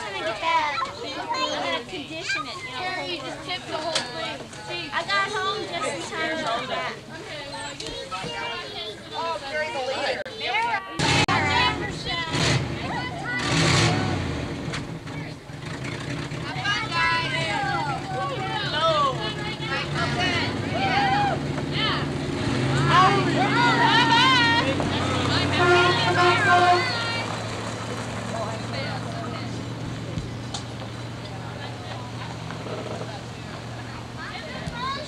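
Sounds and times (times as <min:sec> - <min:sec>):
people calling out: 0:07.4 - 0:14.3, 0:16.4 - 0:27.4
truck engine running: 0:11.0 - 0:35.0.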